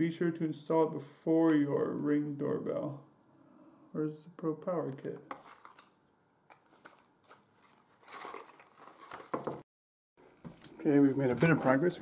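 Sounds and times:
packaging rustling: 5.3s - 9.6s
cardboard boxes being handled: 6.6s - 9.6s.

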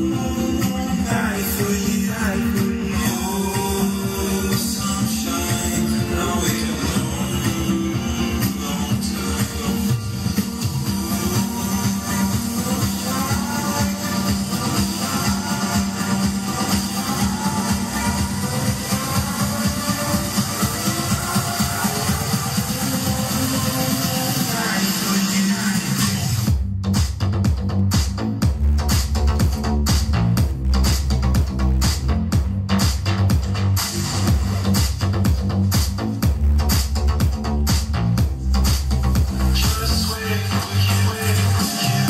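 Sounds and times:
music with fast bass beat: 0.0s - 42.0s.

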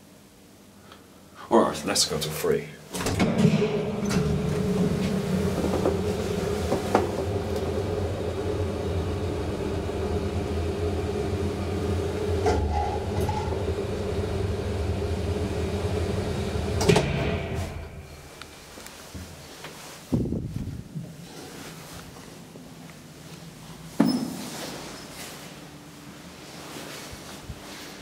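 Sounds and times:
elevator hum and rumble: 2.9s - 28.0s
elevator car stopping clunk: 3.0s - 18.6s.

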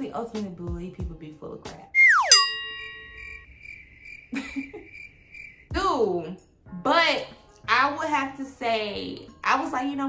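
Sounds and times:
bright ringing chime: 2.0s - 3.4s
falling whistle glide: 2.0s - 3.4s
thin high steady tone: 2.0s - 3.4s.

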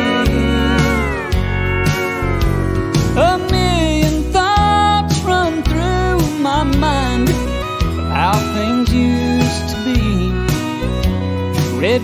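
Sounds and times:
steel guitar sliding down: 0.0s - 5.4s
bass and drums: 0.0s - 12.0s.

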